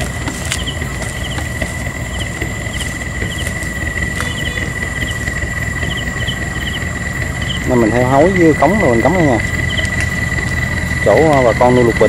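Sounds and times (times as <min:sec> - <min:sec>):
insect chirps: 0:00.0 - 0:12.0
insects trilling: 0:00.0 - 0:12.0
low rumbling noise: 0:00.0 - 0:12.0.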